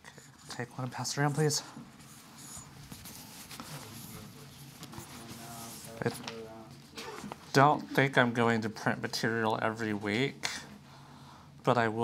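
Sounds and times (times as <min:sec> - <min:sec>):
paper rustling: 0:02.0 - 0:07.6.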